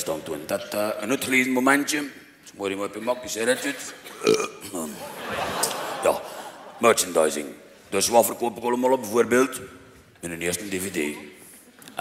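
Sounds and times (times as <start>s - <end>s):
man's throaty raspy vocal noise: 4.1s - 4.9s.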